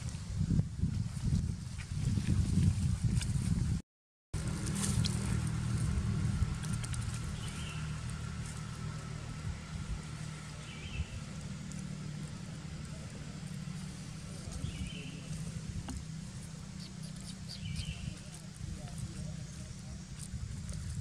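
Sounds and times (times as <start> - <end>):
low engine hum: 4.4 - 21.0.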